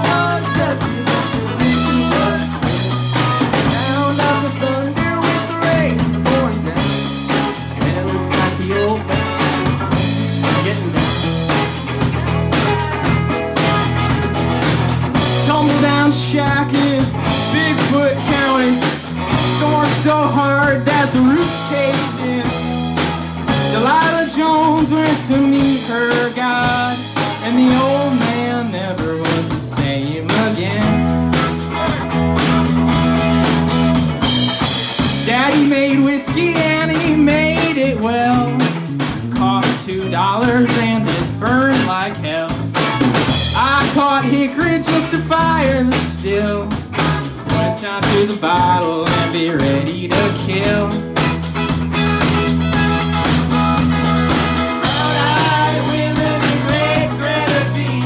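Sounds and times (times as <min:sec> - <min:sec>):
man singing: 0:00.0 - 0:11.8, 0:15.2 - 0:31.4, 0:35.0 - 0:42.8, 0:43.4 - 0:51.3, 0:54.8 - 0:58.0
bass guitar: 0:00.0 - 0:58.0
drum kit beat: 0:00.0 - 0:58.0
electric guitar: 0:00.0 - 0:58.0.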